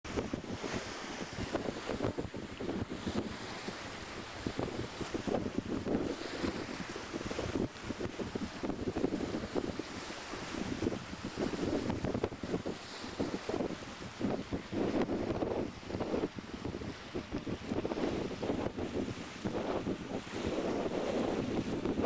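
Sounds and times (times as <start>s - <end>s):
water rushing along hull: 0.1s - 22.0s
wind buffeting microphone: 0.1s - 22.0s.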